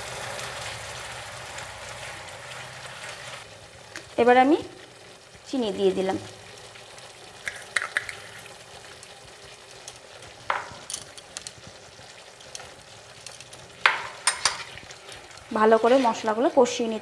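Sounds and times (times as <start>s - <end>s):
paste sizzling in a pan: 0.0s - 17.0s
wooden spatula scraping pan: 15.6s - 16.3s.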